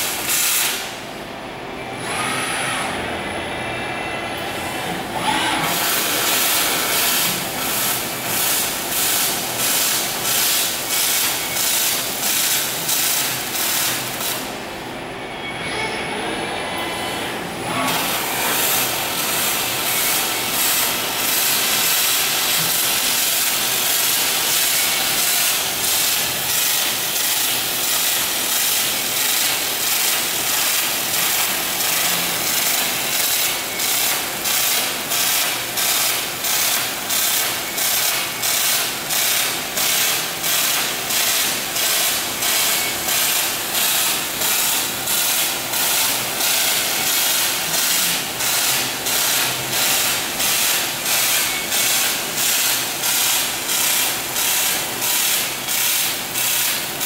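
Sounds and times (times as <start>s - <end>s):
welding arc hissing: 0.0s - 1.0s, 5.6s - 14.5s, 17.8s - 57.0s.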